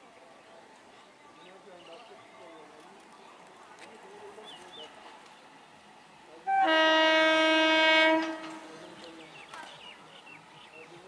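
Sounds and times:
train horn blast: 6.5s - 8.6s.

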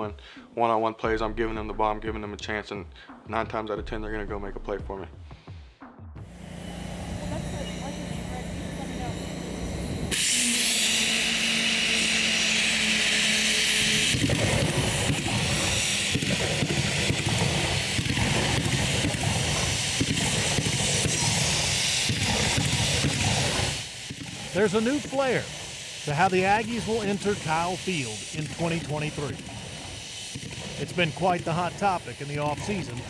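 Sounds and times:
low hum: 6.2s - 33.0s
pyrotechnics crackling: 6.3s - 33.0s
pyrotechnics hissing: 6.3s - 33.0s.

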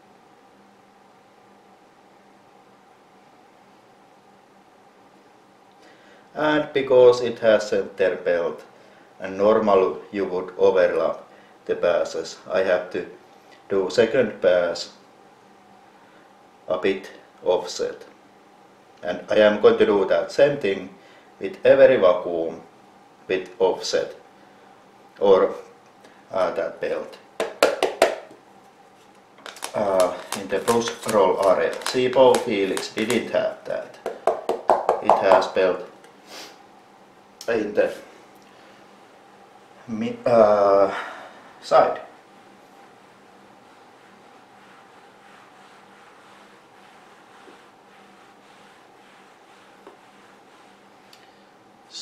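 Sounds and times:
faint steady hum: 0.0s - 52.0s
hand brushing carpet: 28.9s - 35.6s, 42.4s - 51.4s
person speaking: 29.5s - 36.0s.

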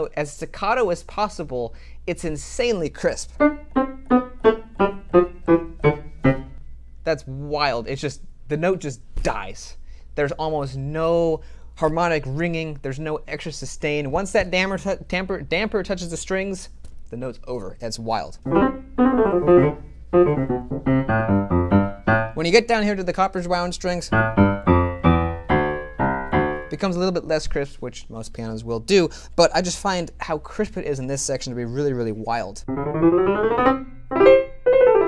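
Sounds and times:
staccato piano notes: 3.4s - 6.6s, 18.5s - 22.4s, 24.1s - 26.8s, 32.6s - 35.0s.

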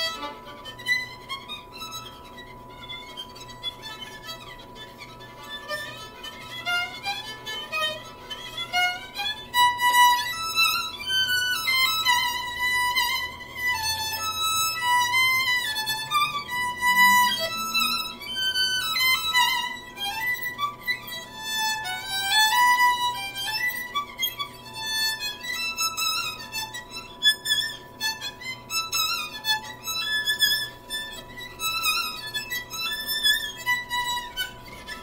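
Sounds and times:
solo violin melody: 0.0s - 35.0s.

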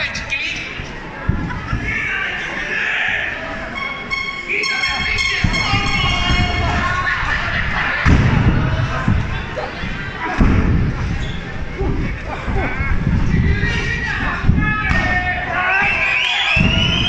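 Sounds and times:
crowd shouting: 1.2s - 17.0s
heavy thuds on wrestling ring: 5.4s - 11.2s, 14.2s - 17.0s.

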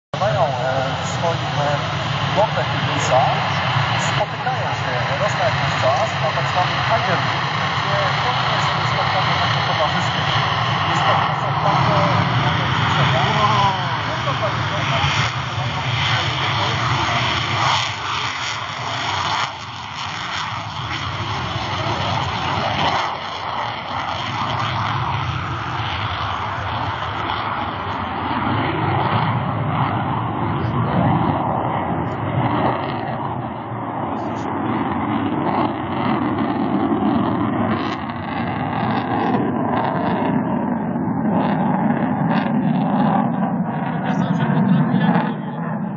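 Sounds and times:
jet engine noise: 0.1s - 45.9s
people talking: 0.2s - 17.7s, 21.6s - 23.0s, 39.0s - 39.4s, 43.9s - 45.7s.

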